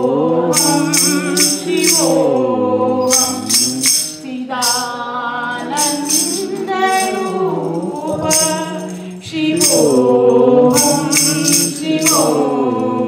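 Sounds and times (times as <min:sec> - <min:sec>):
woman singing a hymn: 0:00.0 - 0:13.0
jingling wooden clappers: 0:00.5 - 0:05.0, 0:05.6 - 0:13.0.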